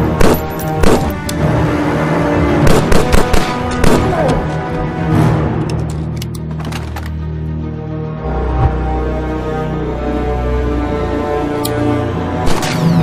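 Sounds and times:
loud film score: 0.0 - 13.0
gunshots: 0.1 - 1.2, 2.6 - 4.3, 12.4 - 13.0.

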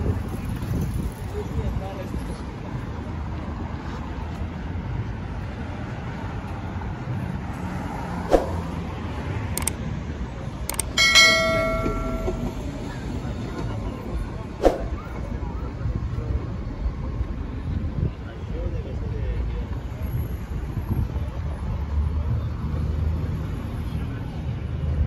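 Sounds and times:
road traffic hum: 0.0 - 25.0
voices of passersby: 0.0 - 25.0
sharp clicks: 9.6 - 9.8, 10.7 - 11.0
bell-like chime: 10.9 - 12.8.

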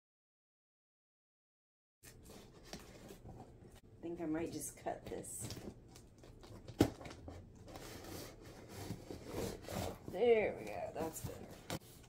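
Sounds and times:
cardboard and tape rustling: 2.1 - 3.8, 5.0 - 12.0.

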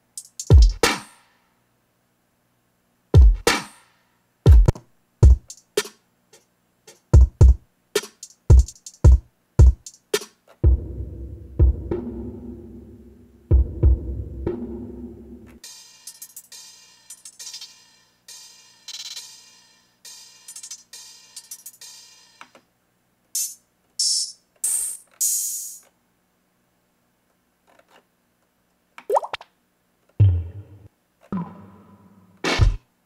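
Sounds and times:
short hi-hat hits: 0.0 - 1.4, 3.2 - 10.4, 15.4 - 22.4, 23.4 - 25.8
drum loop with heavy kicks: 0.1 - 1.1, 3.2 - 3.7, 4.5 - 5.9, 6.9 - 12.6, 13.5 - 15.1, 32.4 - 32.8
percussion hit: 30.2 - 32.8.

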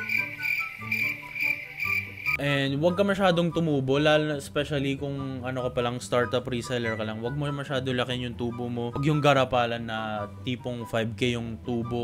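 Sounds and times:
crickets chirping: 0.0 - 2.4.

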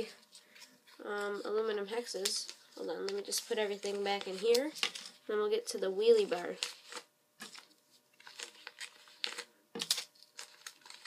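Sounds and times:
paper packaging rustling: 0.0 - 5.3, 6.0 - 11.0.

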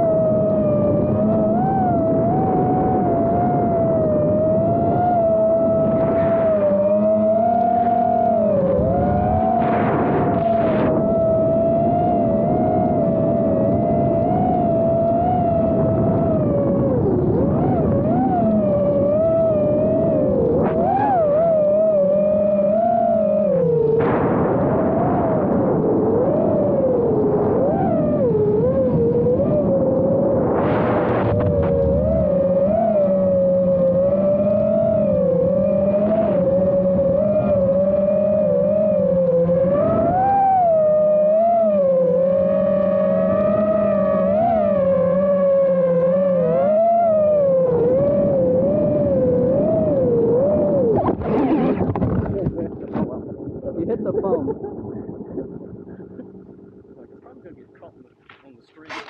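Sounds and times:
quadcopter motors whining: 0.0 - 59.0.

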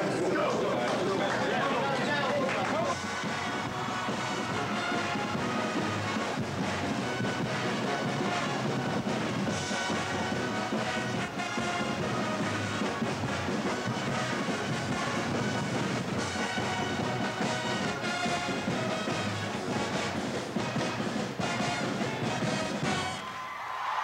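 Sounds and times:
brass band with drums: 0.0 - 23.3.

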